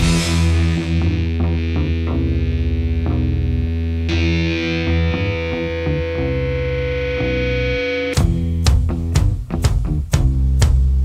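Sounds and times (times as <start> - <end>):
distorted electric guitar: 0.0 - 11.0.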